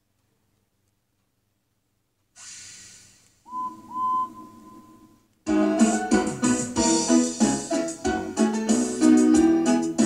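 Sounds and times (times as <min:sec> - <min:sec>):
whistle toots sliding up: 0:02.4 - 0:05.2.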